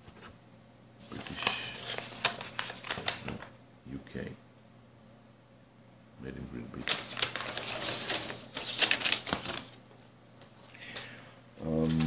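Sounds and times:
vinyl record sleeve rustling: 1.0s - 3.5s, 6.8s - 10.6s.

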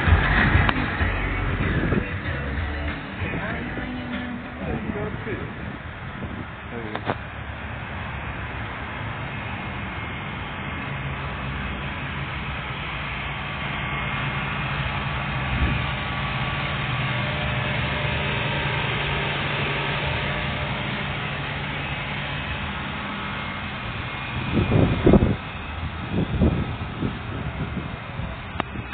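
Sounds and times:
loud low rumbling bursts: 0.0s - 28.9s
low mechanical hum: 0.0s - 28.9s.

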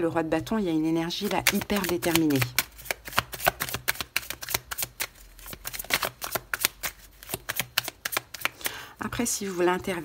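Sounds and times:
cards being shuffled: 1.2s - 8.8s.

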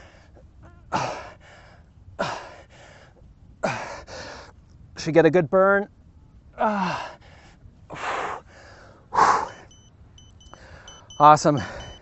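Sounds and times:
man breathing hard: 0.0s - 4.6s, 6.6s - 9.7s, 10.5s - 12.0s
short high beeps: 9.4s - 12.0s.

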